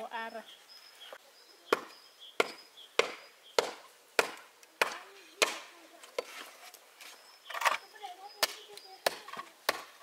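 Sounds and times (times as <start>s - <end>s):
tool striking wood: 1.7s - 6.3s.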